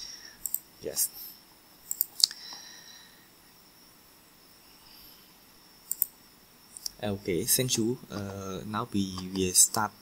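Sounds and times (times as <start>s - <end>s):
faint room hiss: 0.0s - 10.0s
computer mouse clicks: 0.4s - 0.7s, 1.8s - 2.6s, 5.8s - 7.0s.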